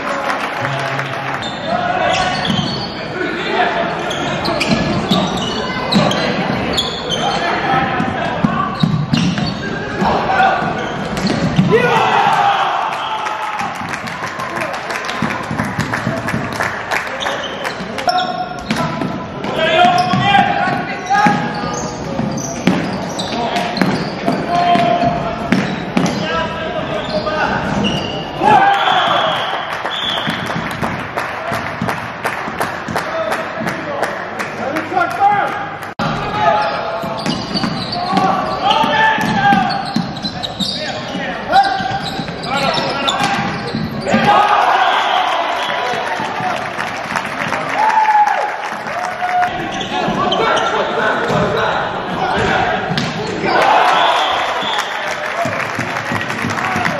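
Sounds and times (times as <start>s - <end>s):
players shouting: 0.0s - 15.6s, 18.0s - 30.5s, 34.7s - 56.9s
sneakers squeaking on court floor: 1.4s - 3.1s, 3.9s - 11.7s, 17.2s - 30.9s, 36.5s - 44.3s, 49.5s - 56.9s.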